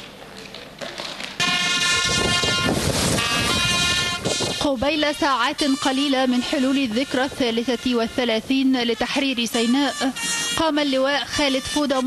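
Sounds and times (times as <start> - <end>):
background noise: 0.0 - 12.0
loud horn-like note: 1.4 - 6.8, 9.6 - 10.7.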